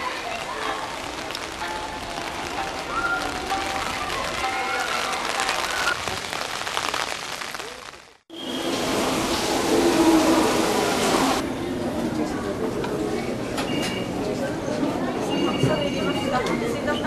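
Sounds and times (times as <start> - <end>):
rain on stone paving: 0.0 - 11.4.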